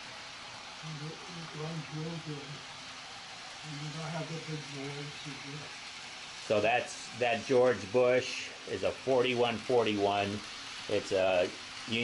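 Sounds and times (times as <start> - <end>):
steady hiss: 0.0 - 12.0
man speaking quietly: 6.5 - 12.0.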